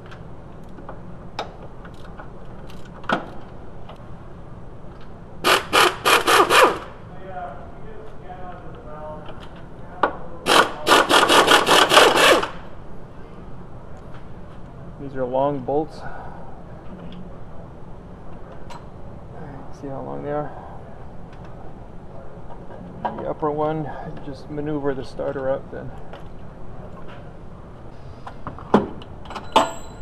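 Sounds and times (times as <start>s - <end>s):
ratchet clicking: 5.5s - 6.9s, 10.5s - 12.6s.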